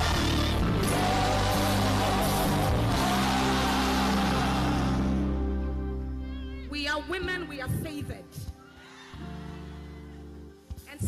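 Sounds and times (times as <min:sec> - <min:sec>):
held keyboard chord: 0:00.0 - 0:06.6.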